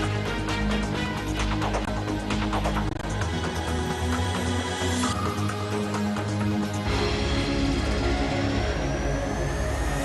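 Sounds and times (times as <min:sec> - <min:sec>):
news theme music: 0:00.0 - 0:03.6.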